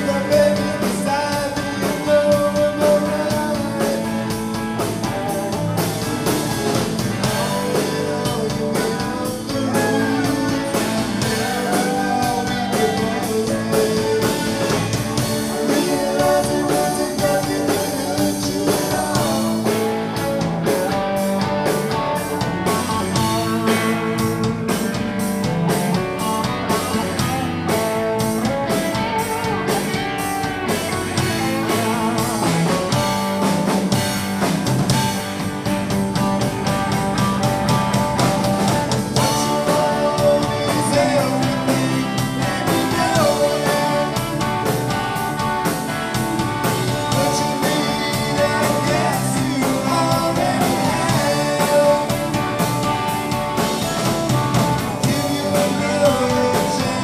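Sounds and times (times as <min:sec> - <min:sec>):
person singing: 0:00.0 - 0:21.0, 0:39.1 - 0:45.3, 0:46.6 - 0:52.8, 0:54.9 - 0:57.0
drum kit beat: 0:00.0 - 0:57.0
electric guitars: 0:00.0 - 0:57.0
electric piano: 0:00.0 - 0:57.0.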